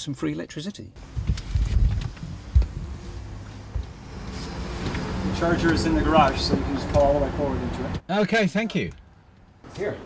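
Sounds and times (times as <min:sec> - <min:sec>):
car cabin rumble: 0:01.0 - 0:07.2.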